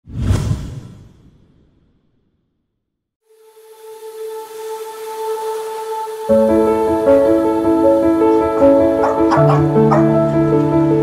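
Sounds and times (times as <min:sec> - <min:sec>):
whoosh with deep boom: 0:00.0 - 0:02.4.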